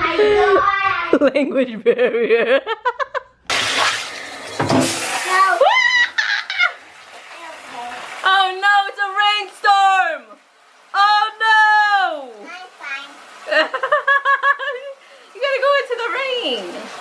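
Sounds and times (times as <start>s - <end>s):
water running into a bathtub: 3.5s - 17.0s.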